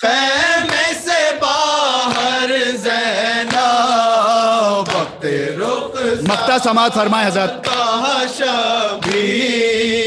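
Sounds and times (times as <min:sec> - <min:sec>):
men chanting mourning lament: 0:00.0 - 0:10.0.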